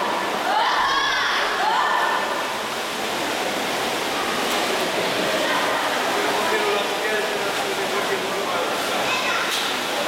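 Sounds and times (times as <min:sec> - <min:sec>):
swimmers splashing water: 0:00.0 - 0:10.0.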